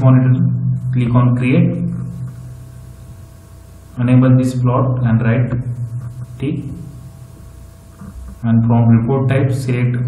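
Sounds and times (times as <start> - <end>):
faint hum: 0.0 - 10.0
microphone background hiss: 0.0 - 10.0.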